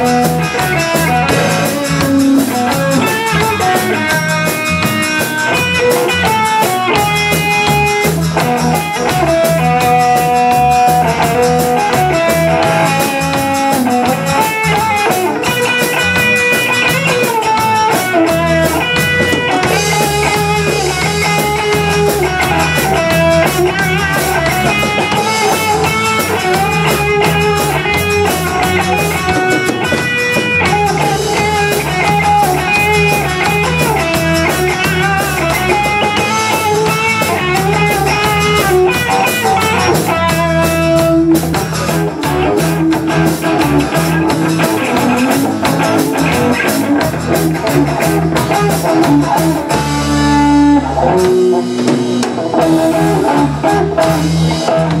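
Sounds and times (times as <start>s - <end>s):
electric guitar: 0.0s - 55.0s
live band playing: 0.0s - 55.0s.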